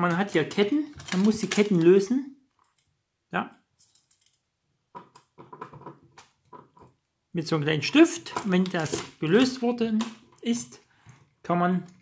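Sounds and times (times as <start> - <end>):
small metal chain clicks and rattles: 3.8 - 4.4.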